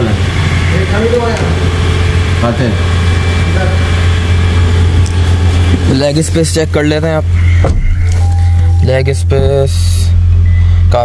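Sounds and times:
loud steady low hum: 0:00.0 - 0:11.0
man speaking: 0:05.8 - 0:07.4, 0:08.7 - 0:10.2.

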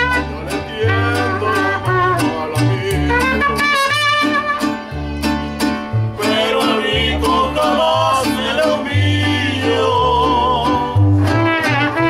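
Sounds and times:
trumpet: 0:00.0 - 0:04.9, 0:11.2 - 0:12.0
mariachi band playing: 0:00.0 - 0:12.0
strummed guitars: 0:00.0 - 0:12.0.

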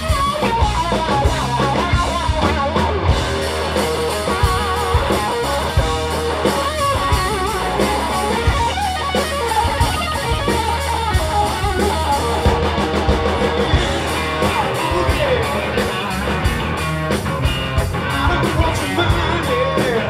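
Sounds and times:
blues-rock band playing: 0:00.0 - 0:20.0
electric guitar solo: 0:00.0 - 0:20.0.

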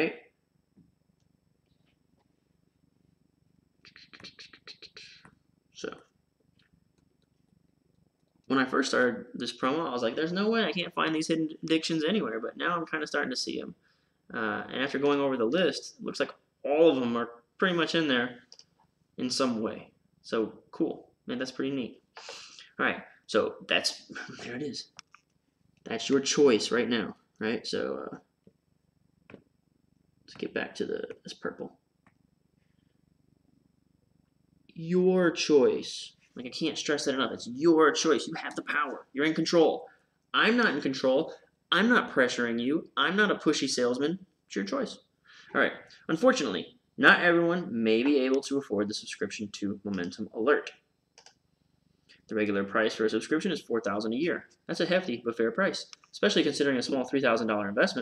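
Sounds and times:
faint low hum: 0:00.0 - 0:58.0.

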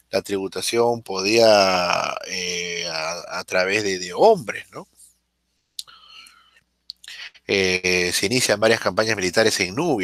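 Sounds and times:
faint whispered murmur: 0:00.0 - 0:05.0, 0:05.8 - 0:10.0
man speaking: 0:00.0 - 0:05.0, 0:05.8 - 0:06.3, 0:06.9 - 0:10.0
mouth clicks: 0:05.8 - 0:07.5.

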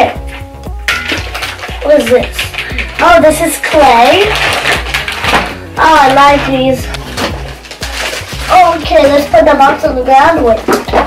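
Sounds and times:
plastic and cardboard rustling: 0:00.0 - 0:11.0.

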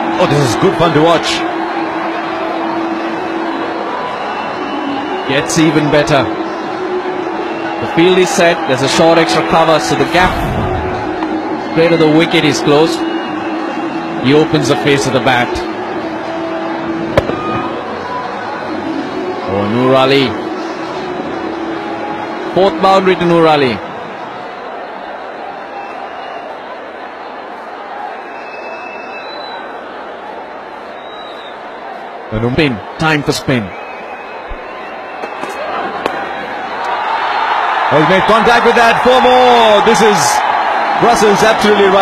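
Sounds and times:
stadium crowd noise: 0:00.0 - 0:42.0
bat cracking on ball: 0:17.2 - 0:17.5.

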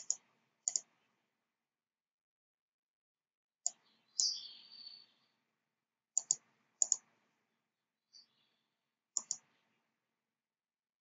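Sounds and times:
mouse buttons double clicking: 0:00.0 - 0:00.9, 0:06.2 - 0:07.0, 0:09.2 - 0:09.4.

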